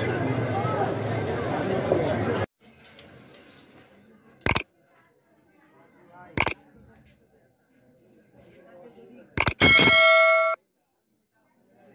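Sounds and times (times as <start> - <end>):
bright bell ding: 9.6 - 10.6.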